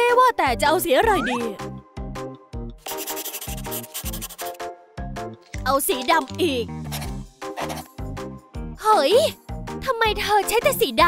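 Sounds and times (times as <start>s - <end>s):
pencil scratching on paper: 2.8s - 4.7s, 6.3s - 8.0s.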